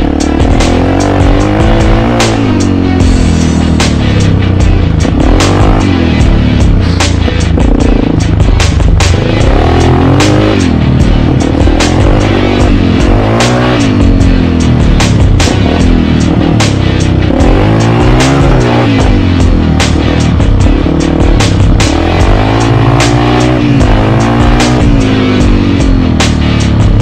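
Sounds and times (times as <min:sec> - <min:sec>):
dirt bike engine revving: 0:00.0 - 0:27.0
music with steady beat: 0:00.0 - 0:27.0.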